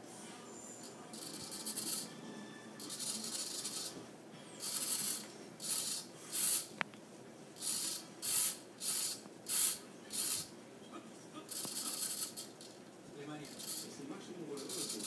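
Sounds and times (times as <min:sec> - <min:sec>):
servo motor whirring: 0:04.6 - 0:06.7, 0:07.6 - 0:10.5.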